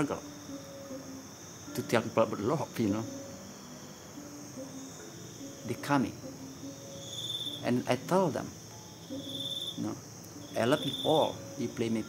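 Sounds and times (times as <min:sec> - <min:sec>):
high-pitched chorus of insects: 0:00.0 - 0:12.0.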